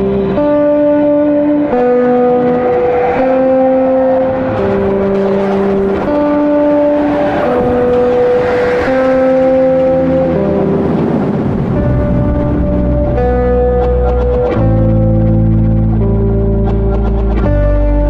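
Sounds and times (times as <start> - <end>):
music with slow held chords: 0.0 - 18.0.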